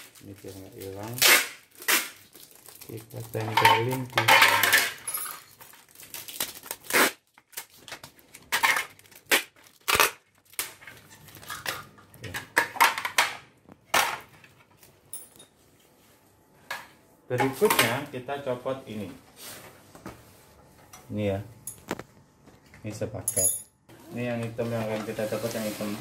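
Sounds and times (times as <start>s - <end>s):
paper and plastic rustling: 0.0s - 13.1s, 24.2s - 26.0s.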